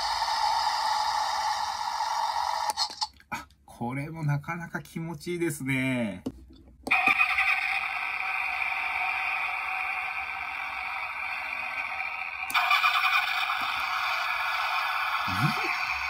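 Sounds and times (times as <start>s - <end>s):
tinny toy car engine sound: 0.0s - 3.1s, 6.9s - 16.0s.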